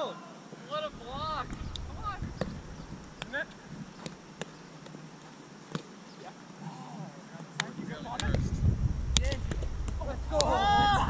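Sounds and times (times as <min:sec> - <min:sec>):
people calling out: 0:10.0 - 0:11.0.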